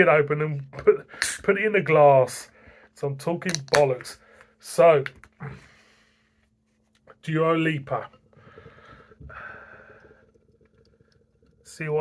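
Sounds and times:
beer pouring into a glass: 7.2s - 12.0s.

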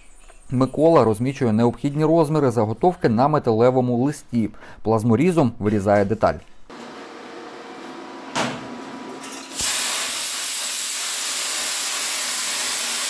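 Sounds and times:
plasma cutter hissing: 9.5s - 13.0s.

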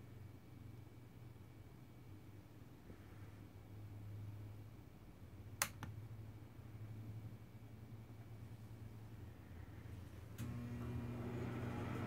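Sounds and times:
switch clicks: 5.6s - 6.0s.

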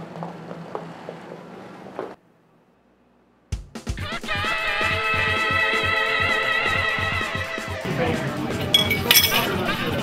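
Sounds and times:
glass clinks: 8.7s - 9.5s.

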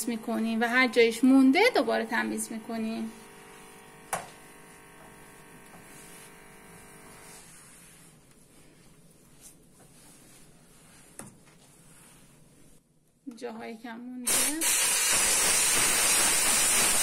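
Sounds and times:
cloth wiping stovetop: 5.8s - 6.4s, 7.1s - 12.8s.

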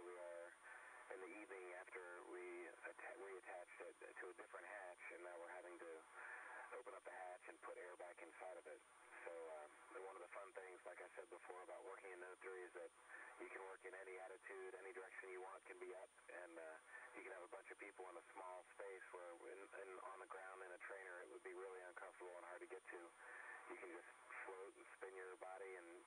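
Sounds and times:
faint high-pitched whine: 0.0s - 26.0s
man talking over radio: 0.0s - 26.0s.

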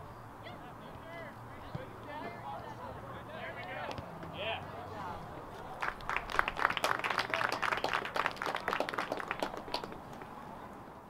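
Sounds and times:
crowd clapping: 5.8s - 10.3s.

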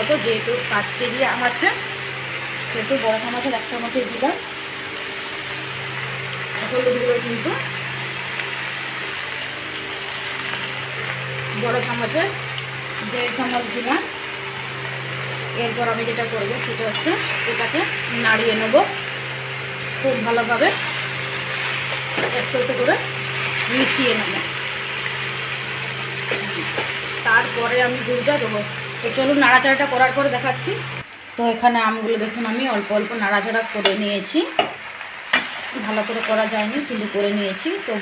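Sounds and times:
steady low hum: 0.0s - 34.0s
food sizzling in oil: 0.0s - 38.0s.

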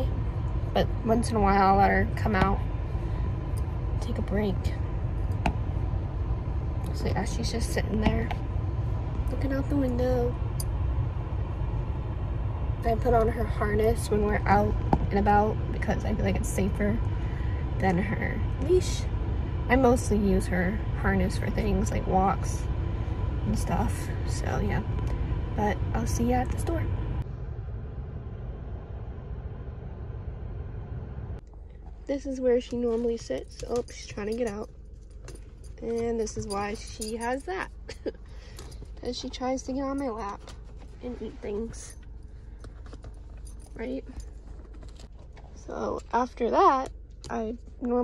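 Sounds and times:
car air conditioning running: 0.0s - 48.0s
car engine idling: 0.0s - 48.0s
faint steady hum: 0.0s - 48.0s.

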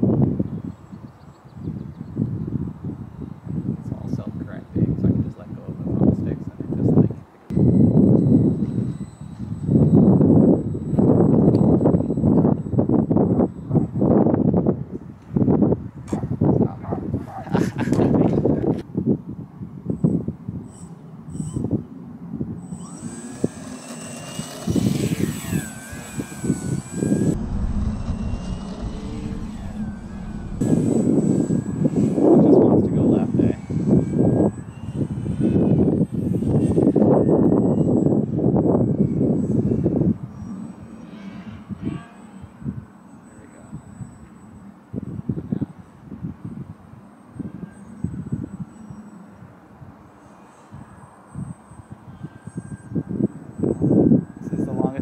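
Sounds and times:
model plane propeller whine: 0.0s - 16.0s, 19.0s - 55.0s
wind buffeting microphone: 0.0s - 42.9s, 50.7s - 55.0s.

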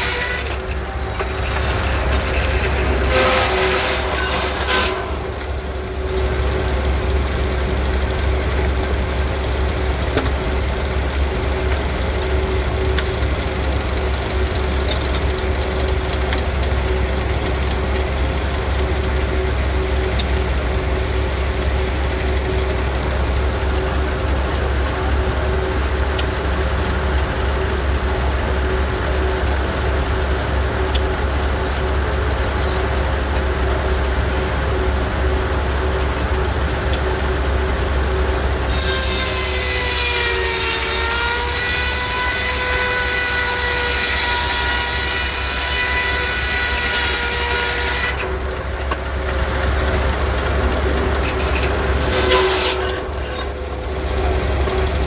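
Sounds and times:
circular saw blade spinning: 0.0s - 7.6s
mill machinery humming: 0.0s - 55.0s.

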